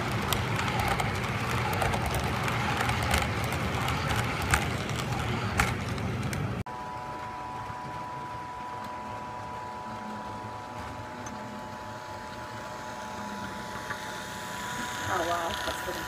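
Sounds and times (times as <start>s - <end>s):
model train cars rumbling: 0.0s - 6.6s
model locomotive motor whine: 0.0s - 16.0s
wheels on rails: 0.0s - 16.0s.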